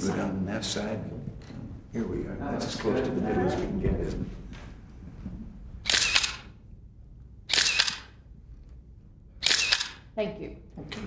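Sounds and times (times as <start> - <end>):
camera shutter clicks: 5.8 - 6.6, 7.5 - 8.2, 9.4 - 10.1.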